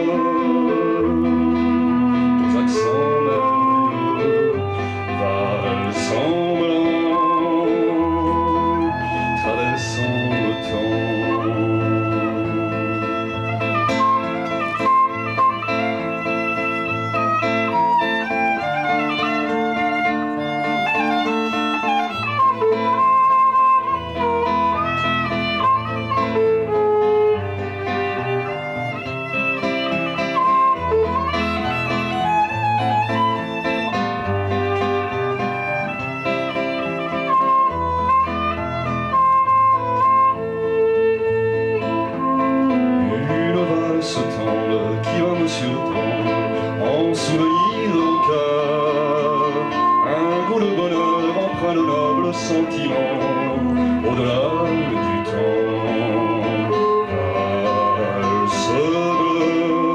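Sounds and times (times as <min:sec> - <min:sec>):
classical guitar accompaniment: 0:00.0 - 0:59.9
violin melody: 0:00.0 - 0:59.9.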